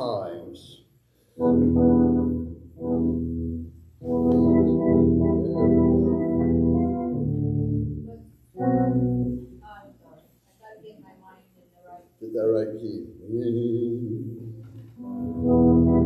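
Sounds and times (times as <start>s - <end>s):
organ tone keyboard chords: 1.3s - 9.6s, 12.4s - 16.0s.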